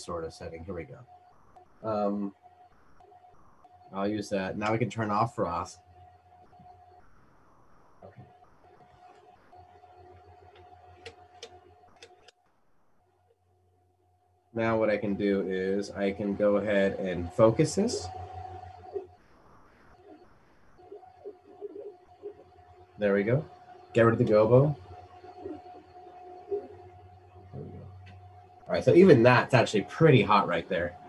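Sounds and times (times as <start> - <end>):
thin steady tone: 0.0 - 12.3, 14.6 - 19.2, 19.9 - 31.0
stepper motors whining faintly: 0.0 - 13.0, 14.6 - 31.0.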